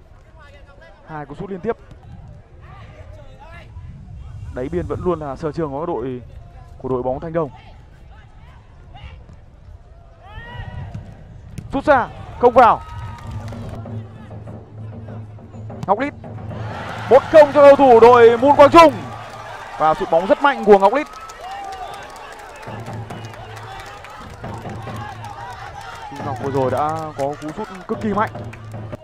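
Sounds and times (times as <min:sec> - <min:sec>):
people clapping: 0:12.8 - 0:13.8, 0:16.6 - 0:29.0
distant player shouting: 0:16.4 - 0:28.6.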